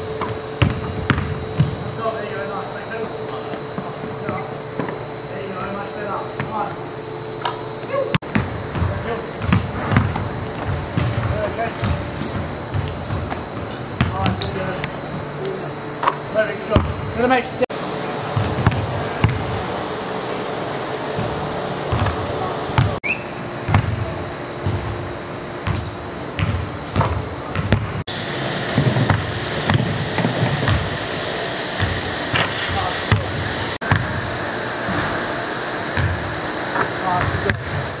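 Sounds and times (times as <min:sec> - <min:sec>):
basketball bouncing on gym floor: 0:00.0 - 0:01.9, 0:08.2 - 0:14.8, 0:16.0 - 0:17.1, 0:18.4 - 0:19.5, 0:23.6 - 0:25.0, 0:25.6 - 0:28.0, 0:28.7 - 0:30.9, 0:31.8 - 0:32.0, 0:32.7 - 0:34.3, 0:36.0 - 0:36.2, 0:37.2 - 0:38.0
short high squeaks: 0:11.7 - 0:13.8, 0:14.4 - 0:16.0.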